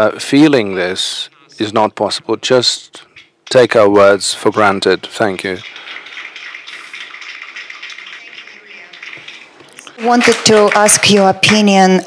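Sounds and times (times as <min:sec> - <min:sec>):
audience applauding: 0:05.3 - 0:11.3.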